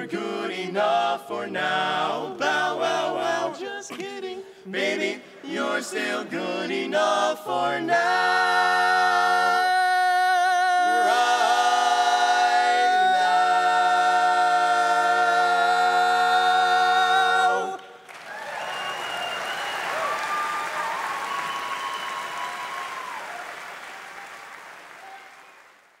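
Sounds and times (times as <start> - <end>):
male barbershop quartet singing: 0.0 - 18.0
audience applause: 18.0 - 26.0.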